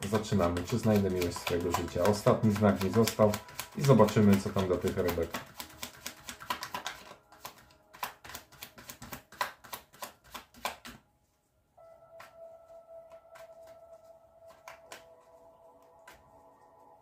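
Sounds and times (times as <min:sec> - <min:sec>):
cards being shuffled: 0:00.0 - 0:11.0, 0:12.1 - 0:17.0
soft music held tone: 0:00.0 - 0:17.0.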